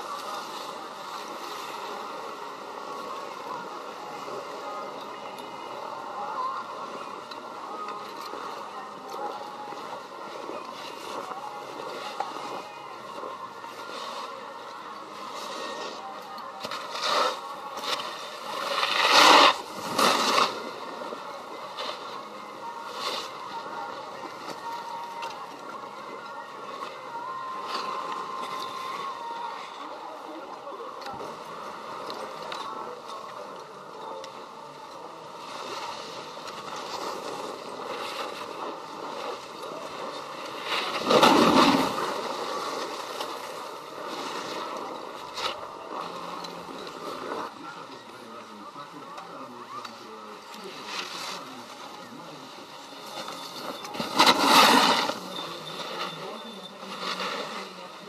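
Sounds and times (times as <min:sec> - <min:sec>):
skis scraping over snow: 0:15.1 - 0:25.7, 0:35.3 - 0:48.8, 0:49.7 - 0:58.0.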